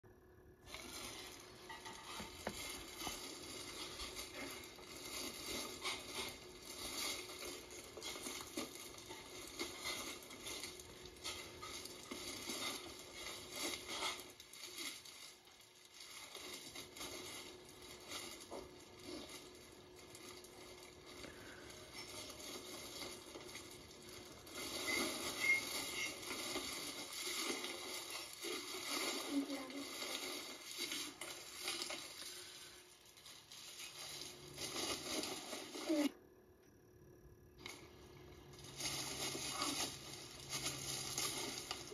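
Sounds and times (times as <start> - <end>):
shredded paper filler rustling: 0.6 - 36.1, 38.5 - 41.9.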